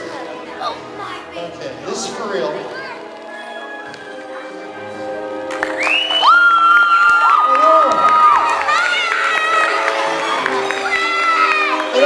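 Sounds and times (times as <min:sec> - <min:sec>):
background music: 0:00.0 - 0:12.0
audience cheering: 0:05.5 - 0:12.0.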